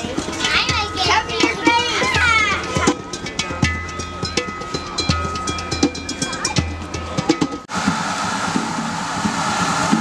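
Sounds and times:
young children chattering: 0.0s - 3.3s.

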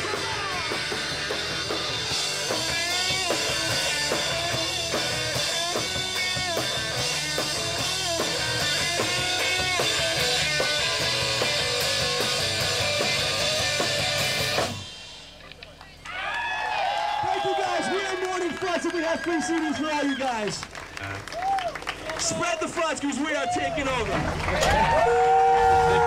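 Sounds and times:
rock music with guitar and drums: 0.0s - 15.4s.

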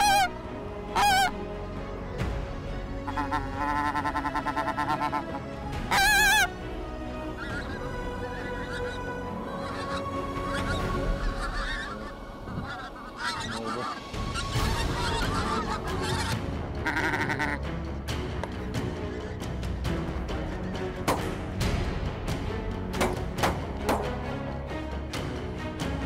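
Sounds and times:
geese honking in flight: 0.0s - 1.4s, 3.0s - 6.6s, 7.3s - 17.6s.

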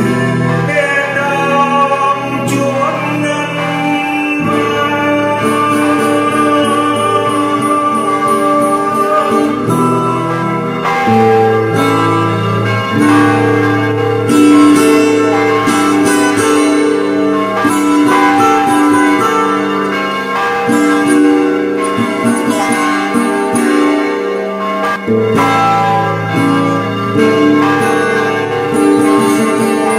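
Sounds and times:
acoustic guitar music: 0.0s - 29.9s
ringing bell tones: 0.0s - 29.9s.

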